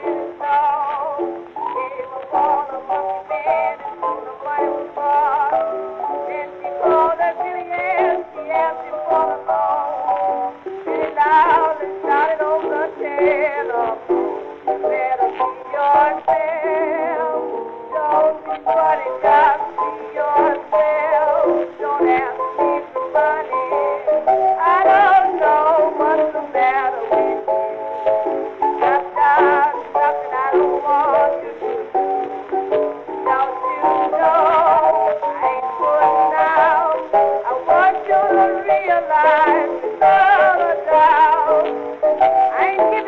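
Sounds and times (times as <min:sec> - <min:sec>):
instrumental accompaniment: 0:00.0 - 0:43.0
old blues record playing: 0:00.0 - 0:43.0
woman singing with vibrato: 0:00.0 - 0:43.0.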